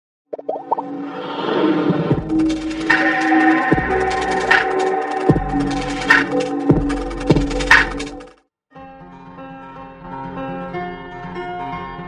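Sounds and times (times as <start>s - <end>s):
short rising plops: 0.4s - 0.9s.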